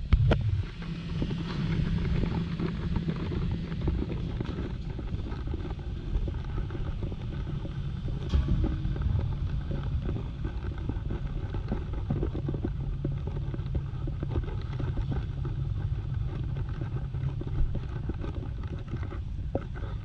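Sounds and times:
faint machine hum: 0.0 - 20.0
low rumble of city street: 0.0 - 20.0.

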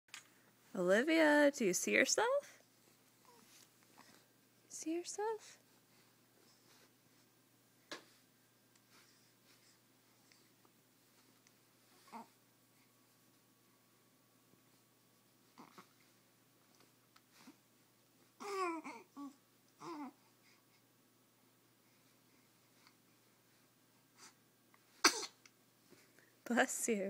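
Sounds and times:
baby cooing: 12.1 - 12.4, 15.6 - 15.9, 18.4 - 20.2
baby sneezing: 25.0 - 25.4.

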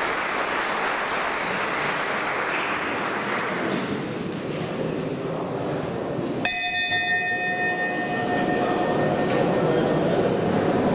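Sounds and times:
low background hubbub: 0.0 - 10.9
bell ringing: 6.4 - 10.7.

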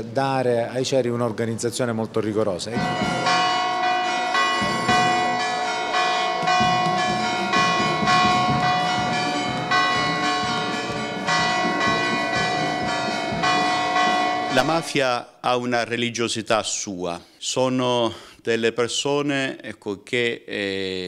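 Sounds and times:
church bells pealing: 2.8 - 15.0.

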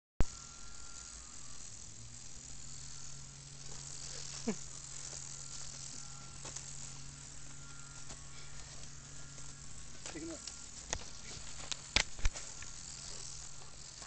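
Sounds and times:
insect chorus hiss: 0.2 - 14.0
low steady hum: 0.2 - 14.0.

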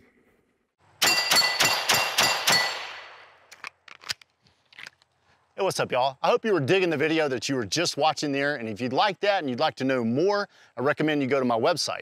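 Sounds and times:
steel plates ringing: 1.0 - 2.9
pistol shots: 1.0 - 3.3.

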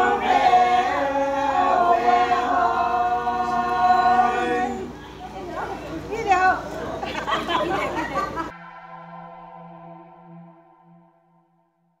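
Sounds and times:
sustained electronic tone: 8.5 - 12.0.

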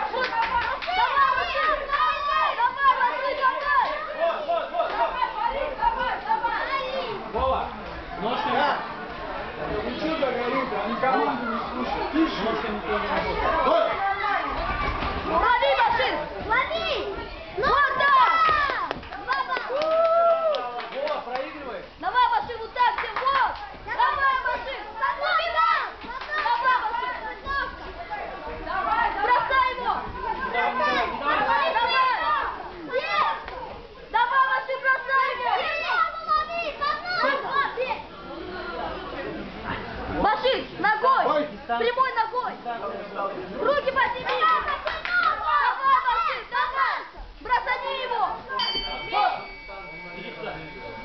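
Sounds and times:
children shouting encouragement: 0.0 - 7.4, 13.1 - 20.8, 22.1 - 27.9, 28.7 - 38.1, 43.7 - 49.3.

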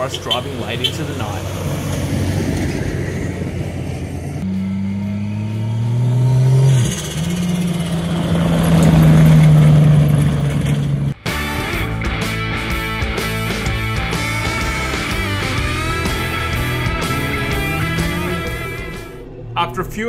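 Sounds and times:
truck engine revving past: 0.0 - 11.2, 13.4 - 20.0
music: 11.2 - 19.4.

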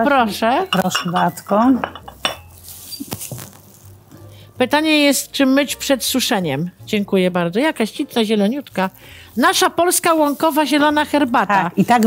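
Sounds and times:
teacup and saucer clinking: 0.6 - 2.6.

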